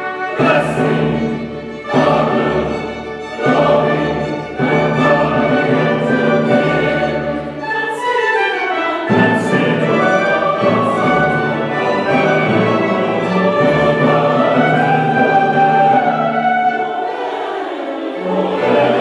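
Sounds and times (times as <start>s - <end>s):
mixed choir singing: 0.0s - 19.0s
orchestra strings: 0.0s - 19.0s.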